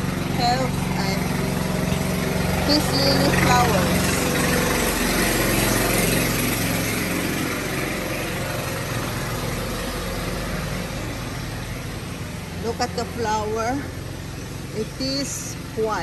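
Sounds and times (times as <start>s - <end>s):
engine idling: 0.0s - 16.0s.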